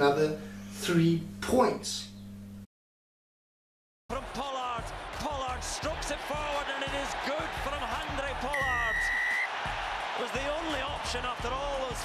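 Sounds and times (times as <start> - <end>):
stadium crowd noise: 4.1 - 12.0
commentator speaking: 4.2 - 9.1
referee's whistle: 8.5 - 9.5.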